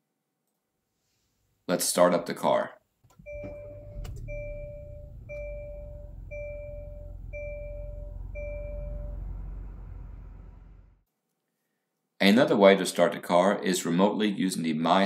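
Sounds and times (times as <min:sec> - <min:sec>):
car engine idling: 0:03.1 - 0:11.0
two-tone dashboard warning chime: 0:03.2 - 0:10.6.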